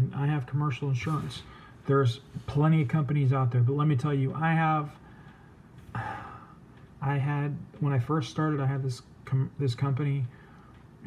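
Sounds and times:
man talking: 0.0 - 5.0, 7.0 - 10.4
man breathing in: 1.4 - 1.8, 5.0 - 6.7, 10.3 - 10.9.

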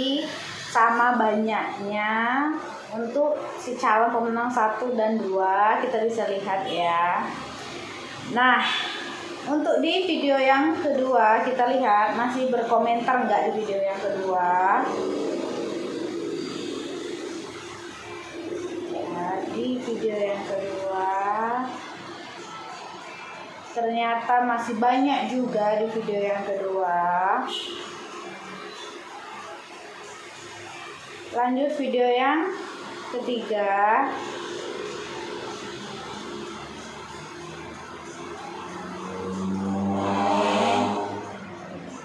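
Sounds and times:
vehicle engine droning: 34.2 - 42.0.

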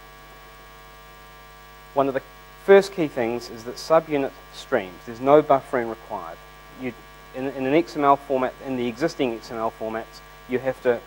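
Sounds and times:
electrical mains hum: 0.0 - 11.0
man speaking: 2.0 - 11.0.

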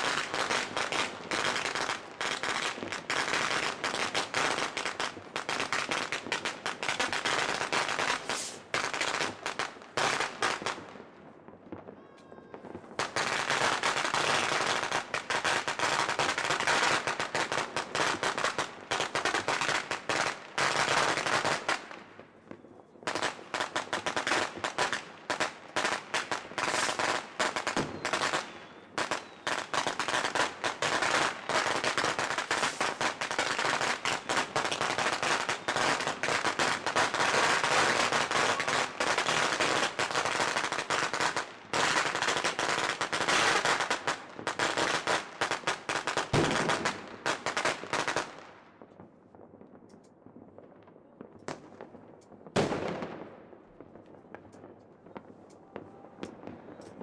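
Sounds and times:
fireworks and firecrackers crackling: 0.0 - 57.0.

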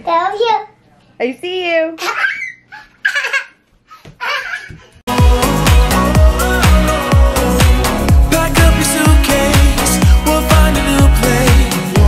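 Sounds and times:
young child laughing: 2.0 - 5.0.

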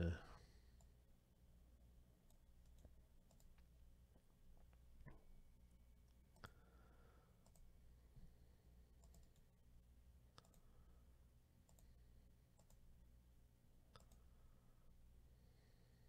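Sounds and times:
computer mouse clicks: 2.2 - 3.7, 7.4 - 7.7, 9.0 - 9.5, 10.3 - 10.7, 11.6 - 12.9, 13.9 - 14.4.

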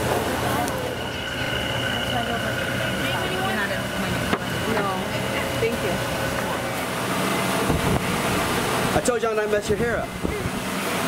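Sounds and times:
large fan wind rumble: 0.0 - 11.0.

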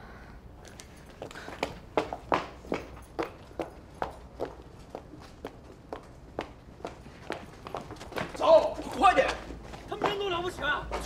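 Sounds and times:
footsteps on hard street: 0.6 - 11.0.

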